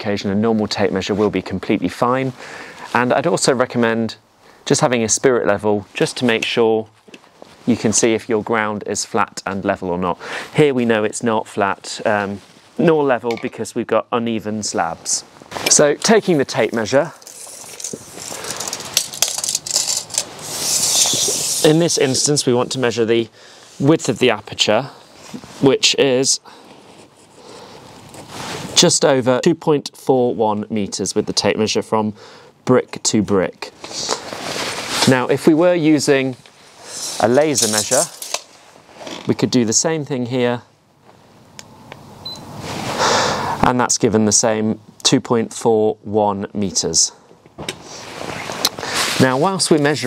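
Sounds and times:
tape measure hiss: 14.7s - 28.9s, 33.8s - 39.3s, 47.8s - 50.0s
tape measure blade clicking: 18.6s - 21.8s.

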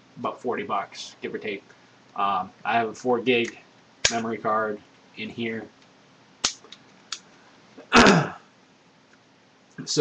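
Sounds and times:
man clearing throat: 7.8s - 8.5s.

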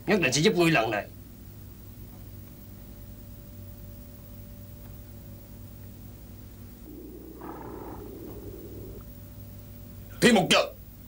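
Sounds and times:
horse snorting: 6.8s - 9.1s.

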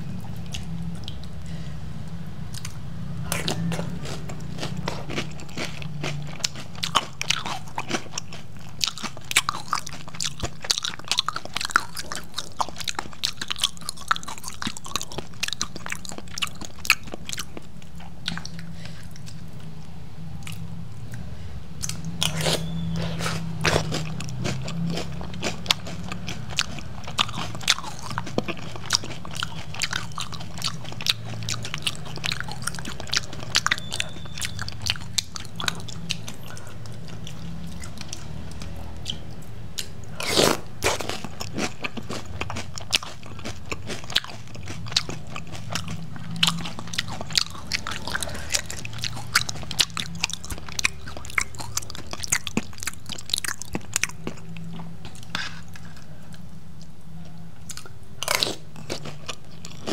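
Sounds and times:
chewing crunchy cereal: 2.5s - 19.7s, 21.8s - 57.0s, 57.6s - 59.9s.

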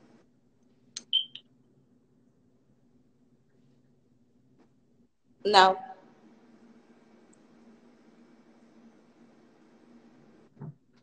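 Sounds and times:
faint low hum: 0.0s - 11.0s
short high-pitched beeps: 1.0s - 1.4s.

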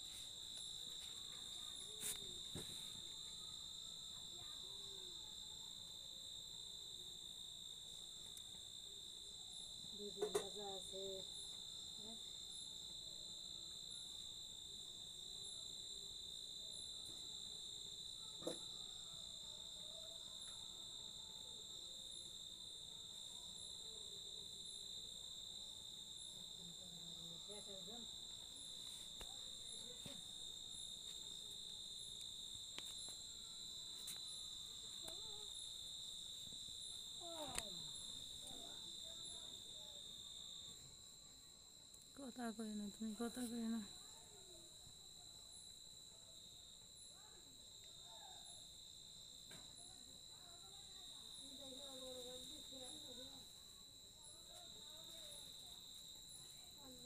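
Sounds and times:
night insects trilling: 0.0s - 57.0s.

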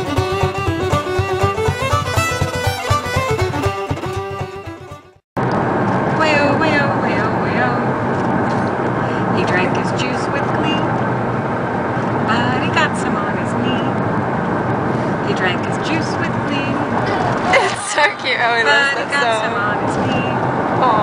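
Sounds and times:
car road and engine noise: 0.0s - 21.0s.

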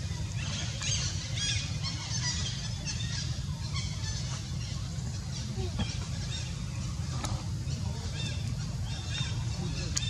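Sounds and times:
small birds chirping: 0.0s - 10.0s
steady low rumble: 0.0s - 10.0s.

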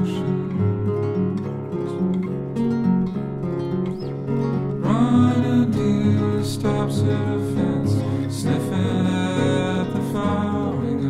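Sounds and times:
plucked acoustic guitar: 0.0s - 11.0s.

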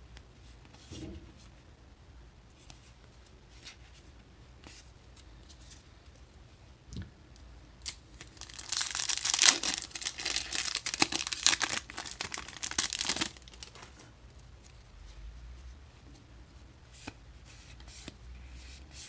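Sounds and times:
foil wrapper tearing and crinkling: 7.8s - 13.9s
handling of cards: 7.8s - 14.8s.

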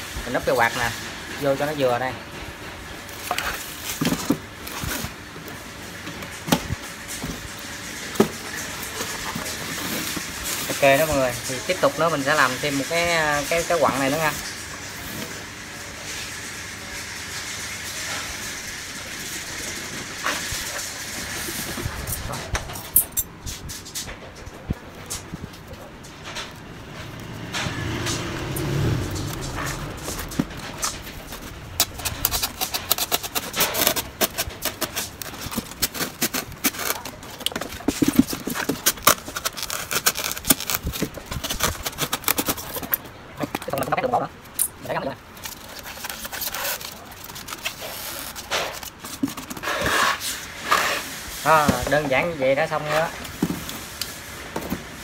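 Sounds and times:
knife cutting foam: 29.2s - 42.8s.

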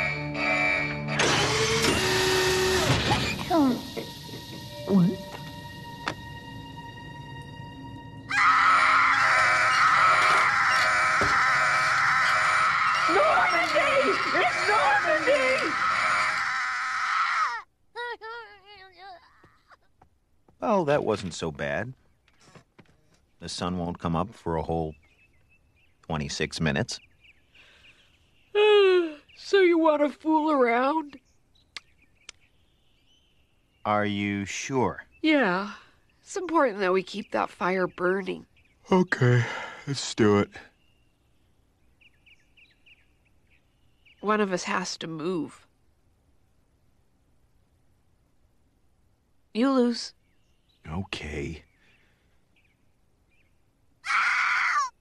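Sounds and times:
baby wailing: 8.3s - 19.6s
faint sharp clicks: 31.7s - 32.4s.

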